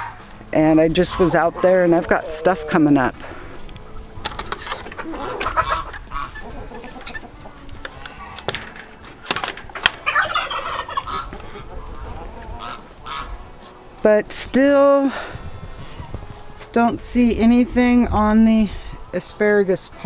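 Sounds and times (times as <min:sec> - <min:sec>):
chickens clucking: 0:00.0 - 0:14.0
footsteps: 0:15.2 - 0:18.0.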